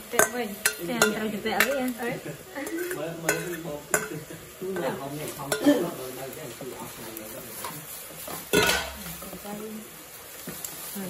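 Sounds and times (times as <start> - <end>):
metal cookware clanking: 0.0 - 9.4.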